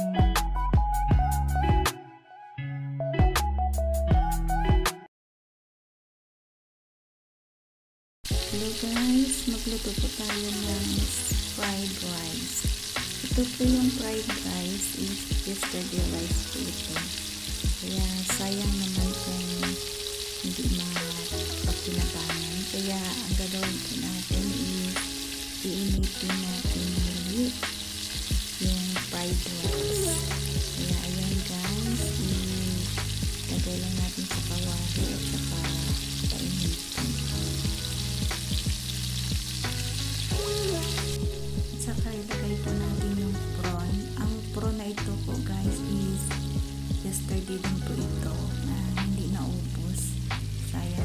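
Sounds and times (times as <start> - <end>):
background music: 0.0 - 5.1, 8.3 - 51.0
rice sizzling in a wok: 8.3 - 41.9, 42.6 - 51.0.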